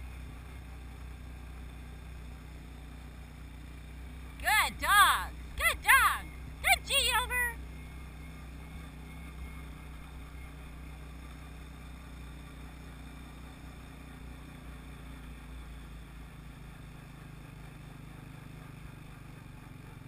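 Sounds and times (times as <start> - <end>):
atv engine hum: 0.0 - 20.0.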